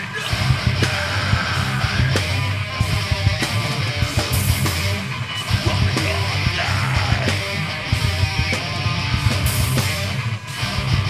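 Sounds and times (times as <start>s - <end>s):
distorted electric guitars: 0.0s - 11.0s
drums: 0.0s - 11.0s.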